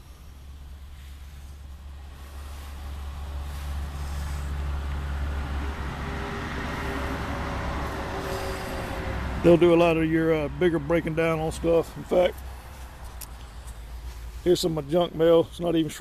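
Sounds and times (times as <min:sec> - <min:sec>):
road noise rushing: 0:00.0 - 0:16.0
vehicle engine hum: 0:00.0 - 0:16.0.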